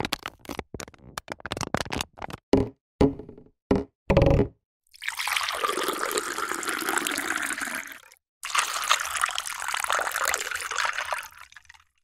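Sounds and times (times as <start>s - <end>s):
plastic bottle knocking on hard surface: 2.5s - 4.6s.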